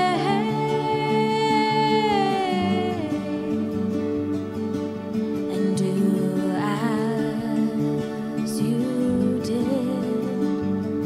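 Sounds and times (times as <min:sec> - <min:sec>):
voice holding a wavering note: 0:00.0 - 0:03.9.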